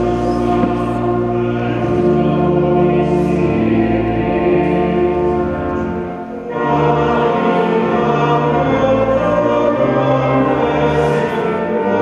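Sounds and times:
choir singing chords: 0:00.0 - 0:12.0.

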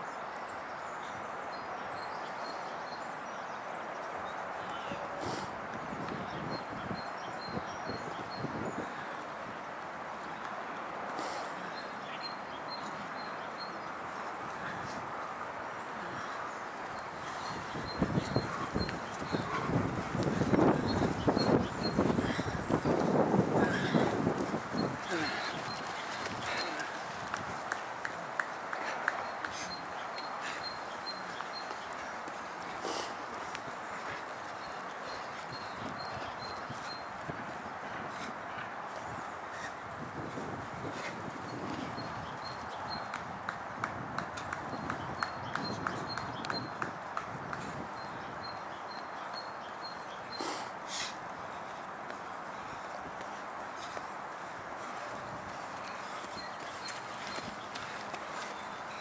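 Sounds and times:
running footsteps on muddy ground: 0:05.7 - 0:59.0.

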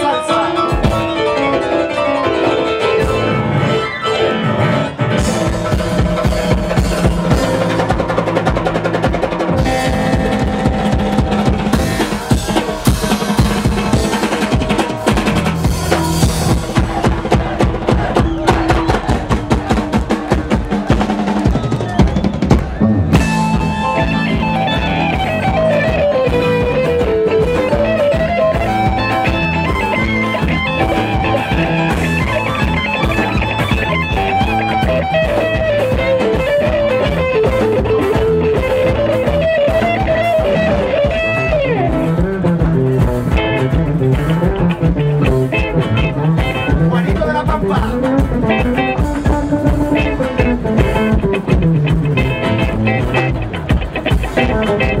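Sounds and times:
live band playing: 0:00.0 - 0:55.0
sliding lead melody: 0:00.0 - 0:55.0
busy drum strokes: 0:05.1 - 0:55.0.

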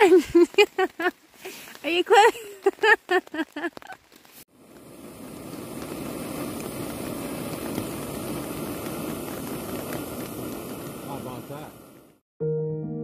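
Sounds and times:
gas stove hissing: 0:04.4 - 0:12.2.

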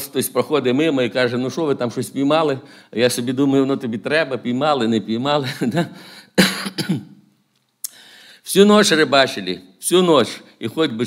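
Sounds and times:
man coughing: 0:06.4 - 0:07.2.

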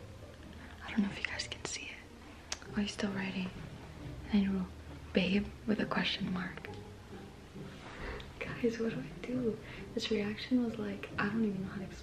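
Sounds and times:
woman whispering: 0:00.7 - 0:02.1.

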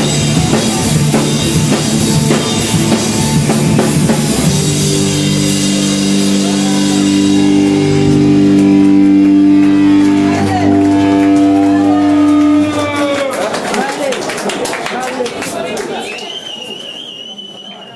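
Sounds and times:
droning electric guitar chord: 0:04.6 - 0:13.3.

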